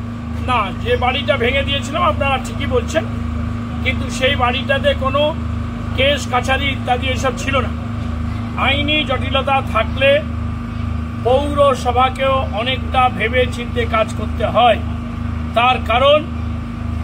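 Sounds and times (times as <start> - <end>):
engine droning: 0.0 - 17.0
man speaking: 0.4 - 3.2, 3.8 - 7.8, 8.5 - 10.4, 11.2 - 14.9, 15.6 - 16.4.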